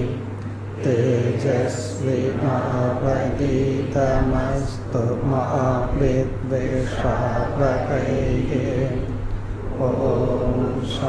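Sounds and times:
man chanting melodically: 0.8 - 9.1, 9.7 - 11.0.

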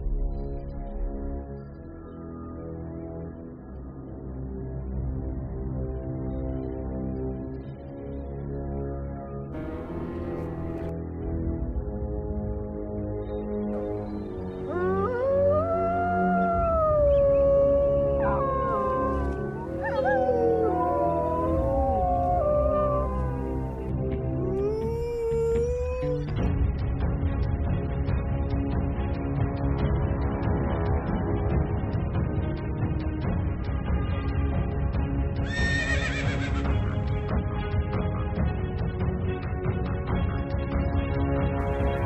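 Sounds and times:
wolf howling: 14.6 - 26.3
horse whinnying: 35.5 - 36.7.

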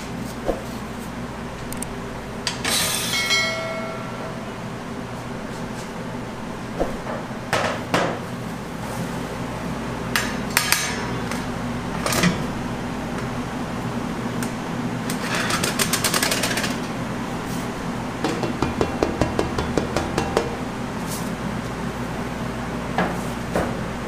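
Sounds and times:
steady machine hum: 0.0 - 24.0
steel trays knocking and rattling: 18.2 - 20.6.

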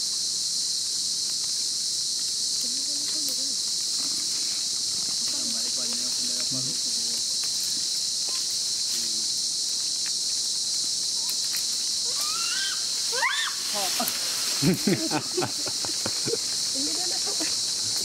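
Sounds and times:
high-pitched insect chorus: 0.0 - 18.0
high rising calls: 12.0 - 17.4.

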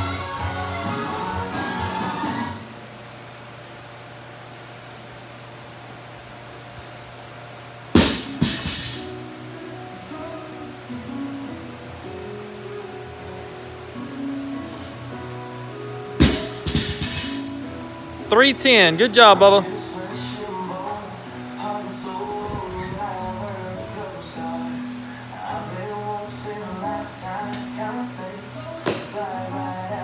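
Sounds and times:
guitar music: 12.1 - 24.9.

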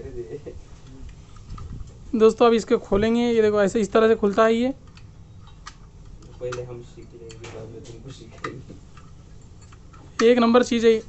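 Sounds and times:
small metal clicks: 8.3 - 10.5.

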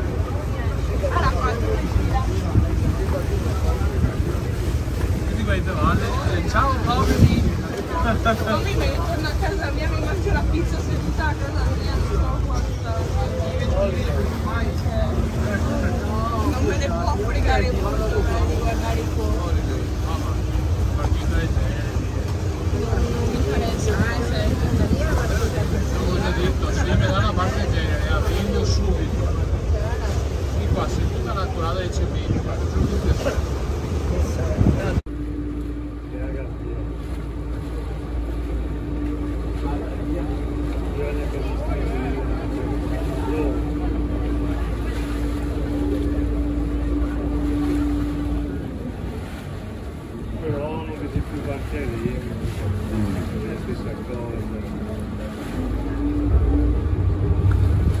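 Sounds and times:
wind buffeting microphone: 0.0 - 35.3, 35.9 - 58.0
motorboat engine running: 0.0 - 58.0
people talking: 0.0 - 58.0
water noise: 0.0 - 58.0.

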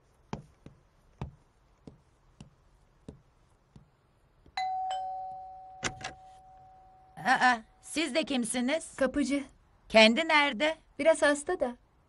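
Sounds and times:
ding-dong doorbell: 4.6 - 7.1.

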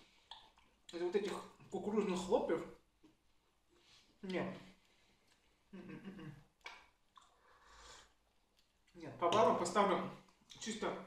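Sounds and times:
man chewing: 0.0 - 0.9, 4.8 - 8.9
soft rustle: 3.1 - 5.6.

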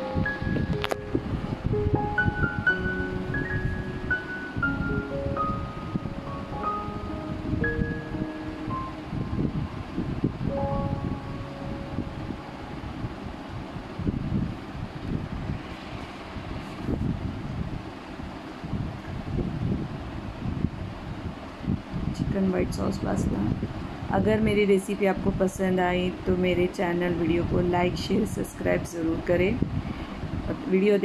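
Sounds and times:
light melodic background music: 0.0 - 14.3.

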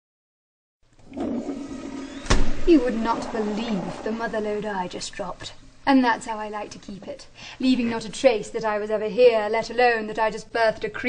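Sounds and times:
toilet flushing: 1.0 - 5.4.

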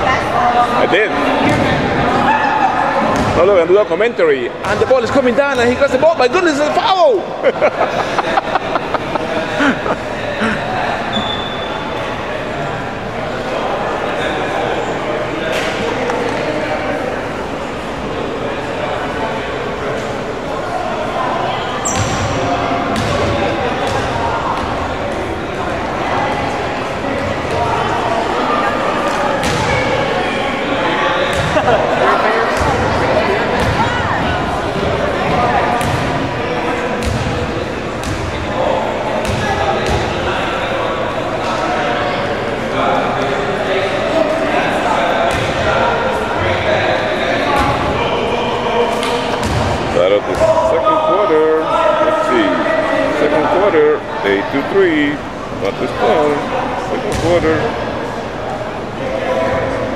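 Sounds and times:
chatter of many voices echoing: 0.0 - 59.9.

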